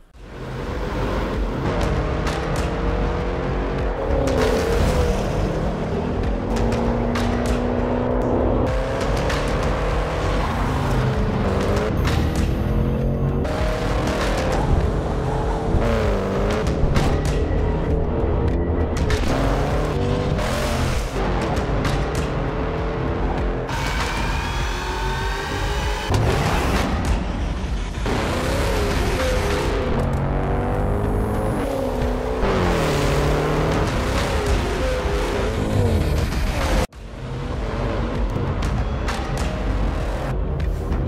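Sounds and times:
soundtrack music: 0.2 - 41.0
car engine revving hard: 28.0 - 38.2.

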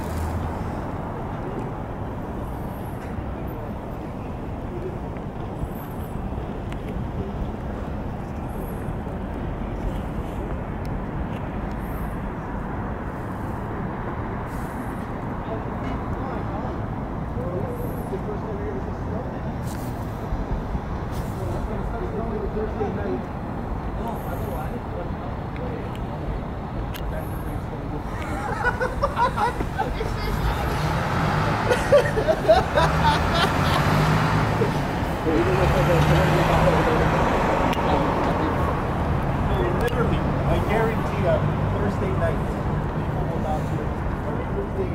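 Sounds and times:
faint distant voices: 0.0 - 44.9
road traffic hum: 0.0 - 44.9.

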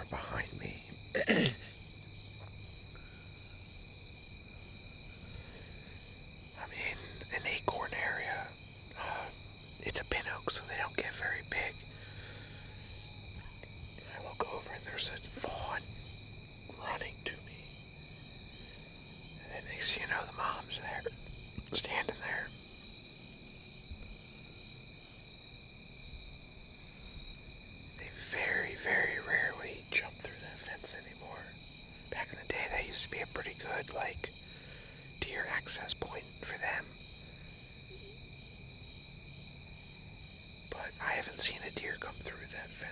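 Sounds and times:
man whispering: 0.0 - 1.8, 6.6 - 11.9, 14.0 - 16.0, 16.7 - 17.7, 19.4 - 22.6, 28.0 - 34.4, 35.2 - 36.9, 40.7 - 42.9
insects trilling: 0.0 - 42.9.

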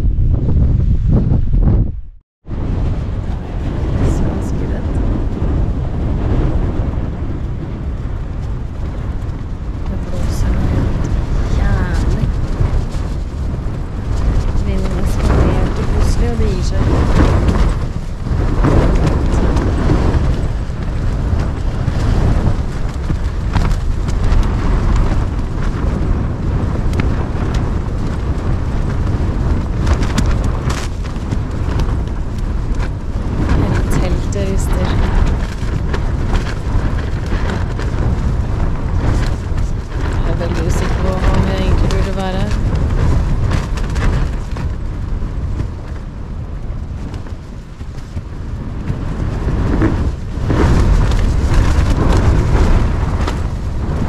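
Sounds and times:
storm wind rumbling: 0.0 - 54.0
tent fabric flapping: 2.4 - 54.0.

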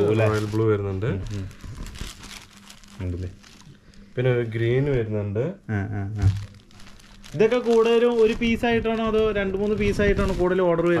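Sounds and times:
silk fabric rustling: 6.3 - 11.0.

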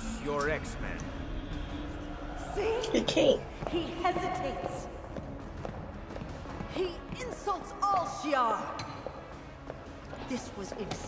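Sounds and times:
quiet background score: 0.0 - 11.0.

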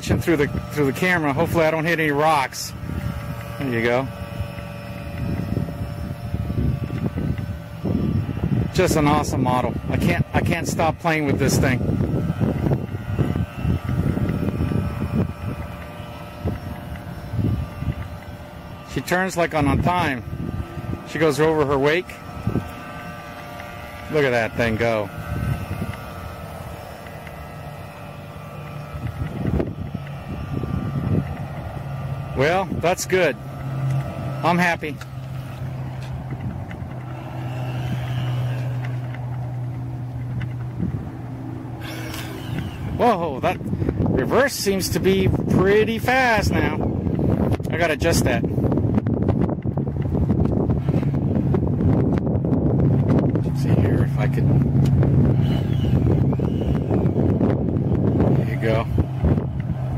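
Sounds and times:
faint electric motor whine: 0.0 - 59.9
wind gusts on microphone: 0.0 - 59.9.

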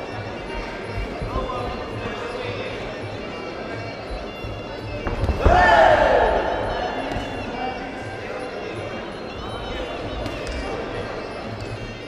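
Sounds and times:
loud held shout: 5.4 - 7.0.

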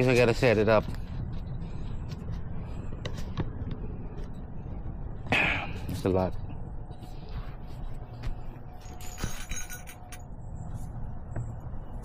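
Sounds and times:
gear clinking and rattling: 8.7 - 10.4.

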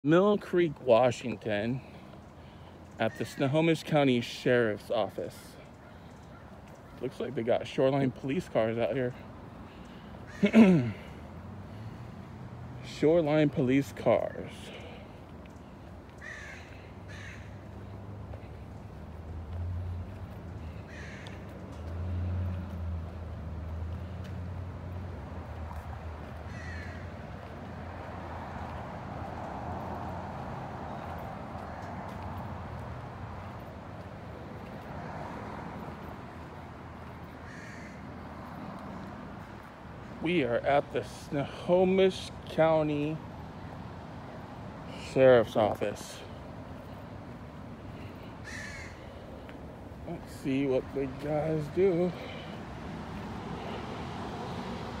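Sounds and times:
rushing outdoor noise: 0.0 - 55.0
crow cawing: 9.7 - 11.0, 16.1 - 17.8, 20.6 - 21.6, 26.4 - 27.2, 37.4 - 38.1, 48.2 - 49.5.

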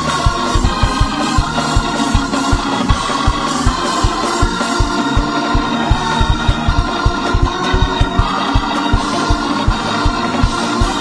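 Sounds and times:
fast low drumbeat: 0.0 - 11.0
organ chords: 0.0 - 11.0.

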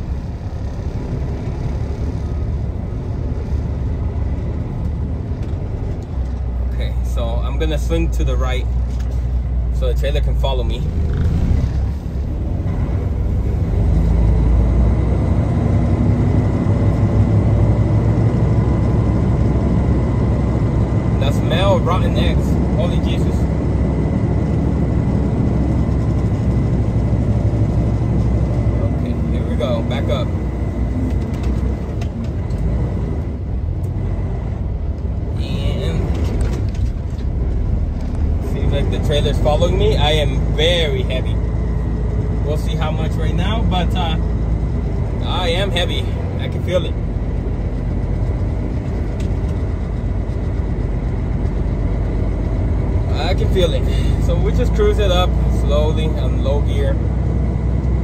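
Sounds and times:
truck engine low drone: 0.0 - 58.0.

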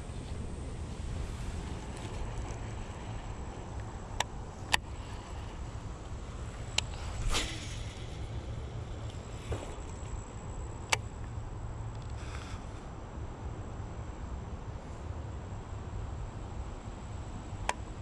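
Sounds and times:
wind rumbling on microphone: 0.0 - 18.0
fishing rod swish: 6.5 - 8.5.

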